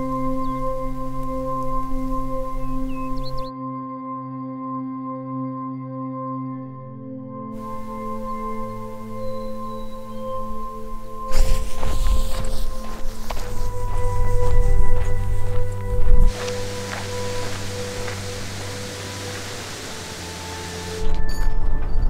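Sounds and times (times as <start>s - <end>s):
sustained tone music: 0.0s - 22.0s
steady hiss: 7.6s - 21.1s.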